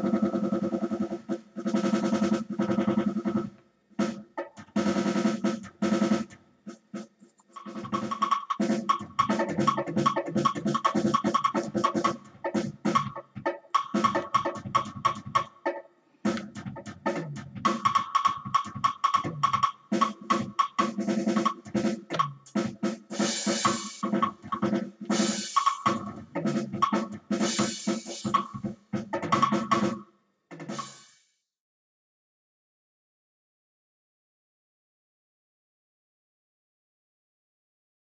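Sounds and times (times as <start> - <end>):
electronic drum hits: 7.6 - 15.5, 16.3 - 30.0.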